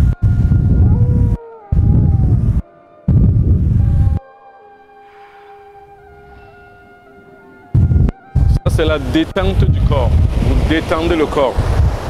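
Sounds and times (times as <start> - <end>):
wind buffeting microphone: 0.0 - 4.2, 7.7 - 12.0
background music of held tones: 0.0 - 10.3.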